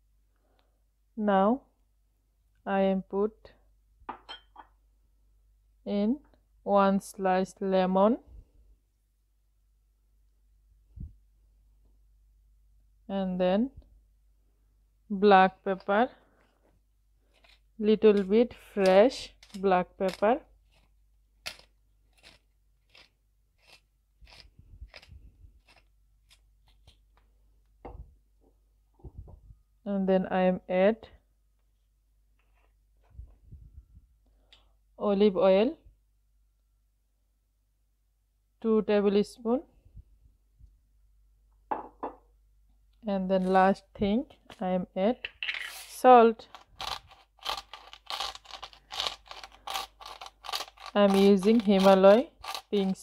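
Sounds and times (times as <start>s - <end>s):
pepper mill grinding: 17.3s - 27.0s, 45.4s - 53.0s.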